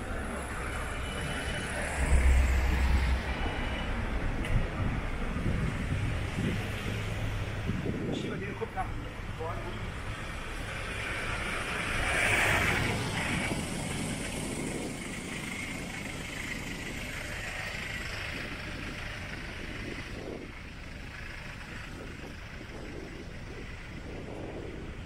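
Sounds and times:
traffic rumble: 0:00.0 - 0:25.0.

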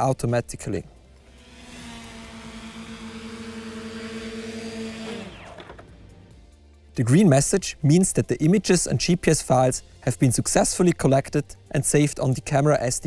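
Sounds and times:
drone propellers whirring: 0:01.0 - 0:06.2.

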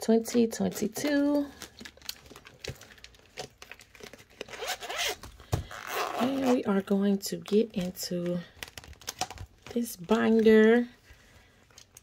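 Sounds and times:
vinyl pouch clicking and scraping: 0:00.3 - 0:06.7
zipper being pulled open: 0:04.4 - 0:06.6.

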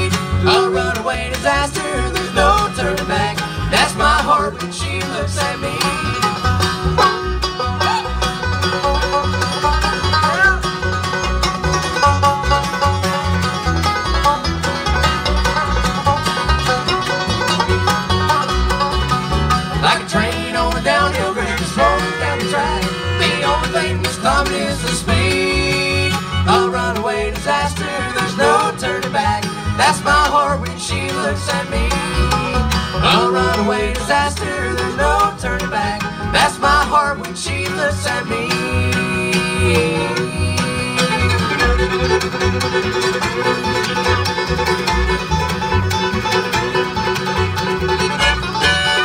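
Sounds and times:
bluegrass band playing: 0:00.0 - 0:49.0.

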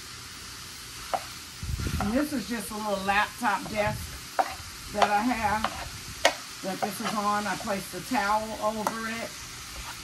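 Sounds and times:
ground beef sizzling in skillet: 0:00.0 - 0:10.0
metal spoon stirring: 0:04.4 - 0:07.8.

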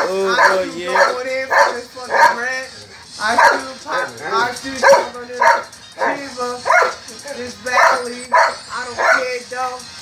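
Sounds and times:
man rapping a cappella: 0:00.0 - 0:09.8.

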